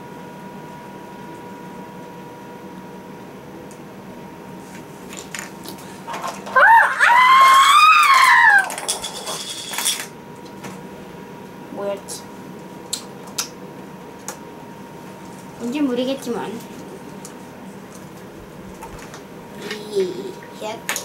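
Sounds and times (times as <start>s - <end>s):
child squealing: 6.5s - 8.8s.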